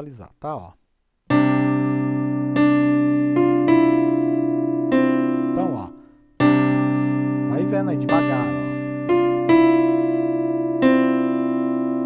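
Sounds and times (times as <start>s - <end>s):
electronic keyboard piano notes: 1.3s - 12.0s.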